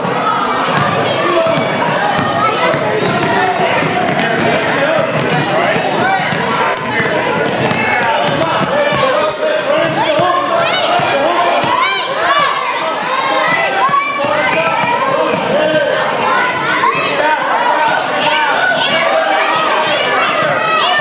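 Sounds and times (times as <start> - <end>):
chatter of children and spectators: 0.0 - 21.0
sneakers squeaking: 0.7 - 16.2, 18.6 - 21.0.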